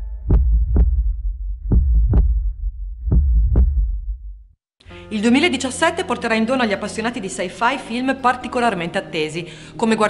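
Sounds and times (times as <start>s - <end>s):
deep double thump: 0.1s - 4.5s.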